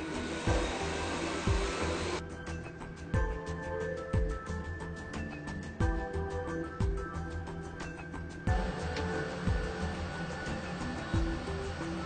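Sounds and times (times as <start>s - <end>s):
sewing machine whirring: 0.0s - 2.2s, 8.6s - 12.0s
background music: 0.0s - 12.0s
deep drum beat: 8.5s - 8.8s.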